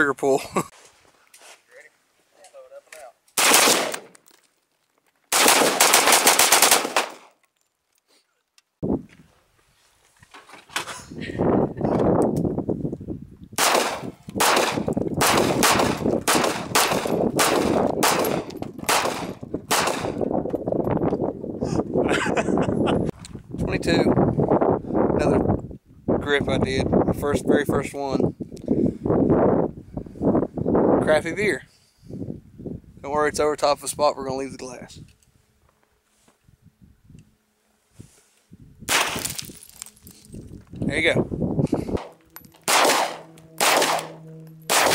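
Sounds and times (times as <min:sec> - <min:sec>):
pistol shots: 0:03.4 - 0:04.1, 0:05.3 - 0:07.3, 0:13.6 - 0:20.2, 0:38.9 - 0:39.4, 0:42.0 - 0:44.9.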